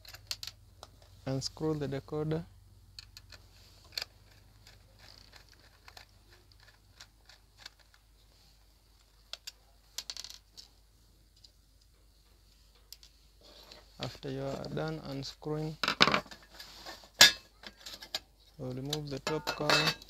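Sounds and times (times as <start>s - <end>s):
screws dropped on wooden table: 10.0s - 10.6s, 15.8s - 16.5s, 17.2s - 18.2s, 19.3s - 20.0s.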